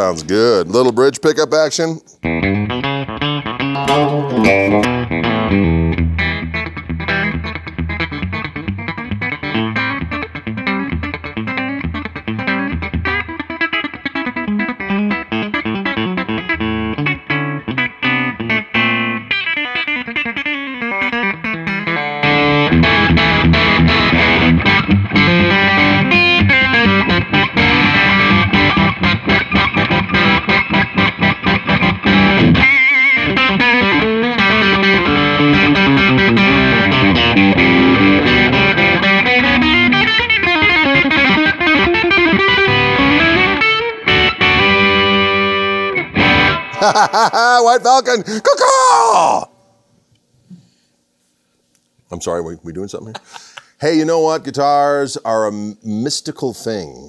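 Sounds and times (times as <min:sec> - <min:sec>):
distorted electric guitar: 0:02.3 - 0:47.1.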